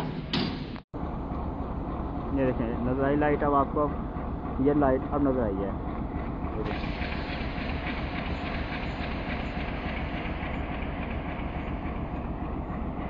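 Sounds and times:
train engine rumbling: 0.0s - 13.0s.

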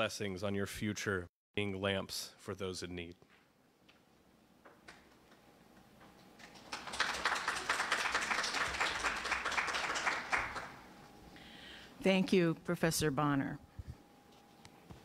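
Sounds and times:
audience applauding: 6.4s - 10.8s.

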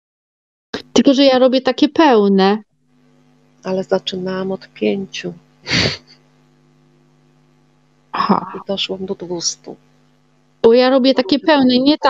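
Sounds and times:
electrical hum: 0.8s - 12.0s.

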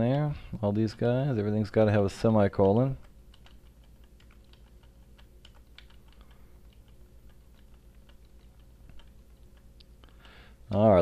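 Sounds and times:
low electrical hum: 0.0s - 11.0s
computer keyboard typing: 2.5s - 11.0s.

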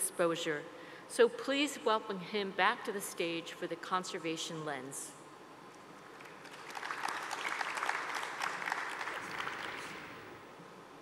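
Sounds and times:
audience applause: 6.1s - 10.2s.

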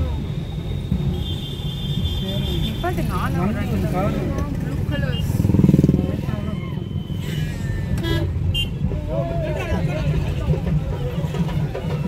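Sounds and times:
road traffic: 0.0s - 12.0s
people's voices: 2.2s - 12.0s
motorcycle engine passing: 4.6s - 6.4s.

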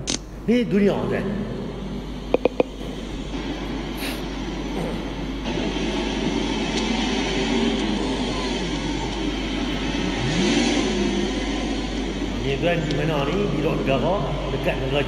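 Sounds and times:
sports car engines revving: 0.0s - 15.0s.

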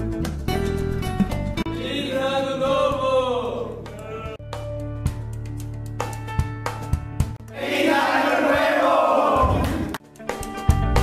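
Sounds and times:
young men calling out together: 1.8s - 4.4s.

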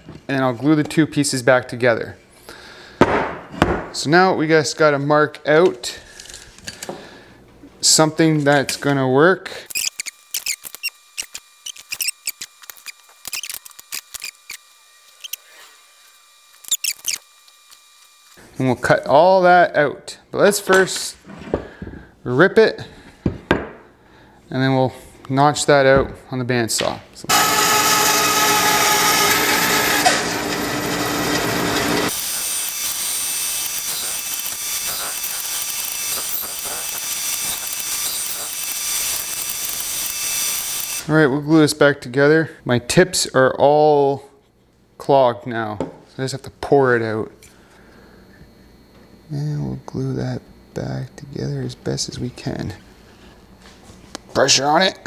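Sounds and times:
power saw cutting wood: 9.7s - 18.4s, 27.3s - 41.1s
bandsaw running: 27.3s - 41.1s.

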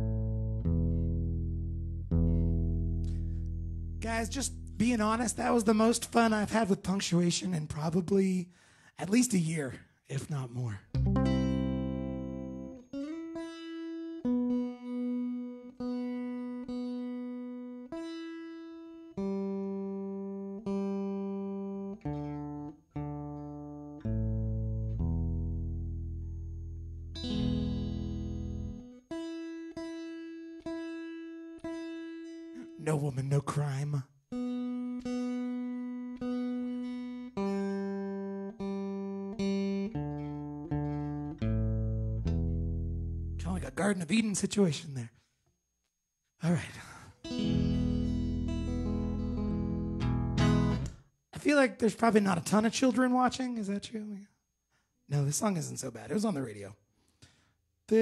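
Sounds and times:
guitar strings plucked: 0.0s - 6.2s, 10.9s - 32.9s, 34.4s - 43.7s, 47.2s - 51.0s
guitar strum: 0.0s - 6.2s, 10.9s - 32.8s, 33.7s - 43.7s, 47.2s - 51.0s.

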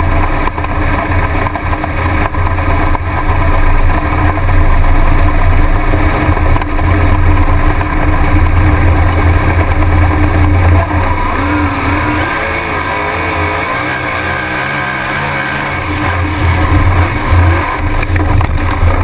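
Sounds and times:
race car engine at speed: 0.0s - 19.0s.

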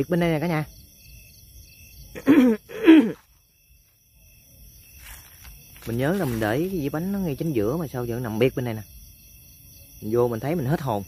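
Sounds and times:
man laughing: 2.2s - 3.2s.

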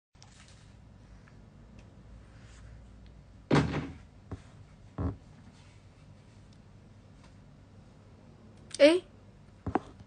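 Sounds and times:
sudden thump: 3.5s - 4.0s.

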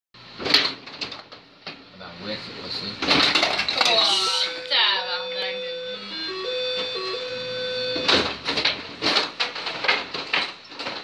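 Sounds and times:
plastic players and rods clacking: 8.5s - 11.0s.

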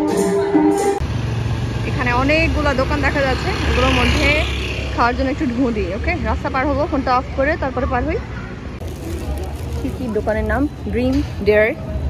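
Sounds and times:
music: 0.0s - 1.0s
traffic rumble: 0.8s - 12.0s
people talking: 1.9s - 8.3s, 9.0s - 11.8s.

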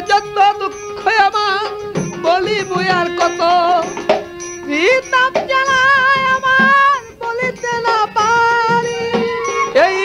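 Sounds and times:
folk music high melodic line: 0.0s - 10.0s.

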